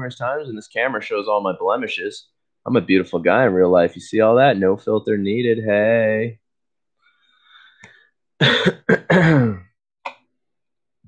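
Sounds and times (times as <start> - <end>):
man clearing his throat: 8.4 - 9.8.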